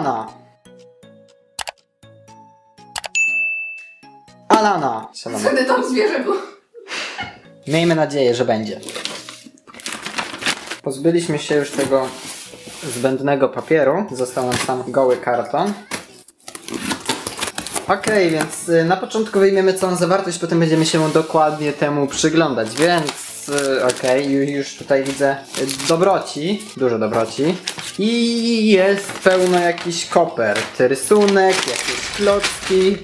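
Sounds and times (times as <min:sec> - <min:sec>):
light background music: 0:00.0 - 0:33.0
notification bell ding: 0:03.0 - 0:04.4
cardboard flaps rustling: 0:08.8 - 0:10.8, 0:11.5 - 0:13.2, 0:28.8 - 0:33.0
knife slitting packing tape: 0:15.8 - 0:18.5.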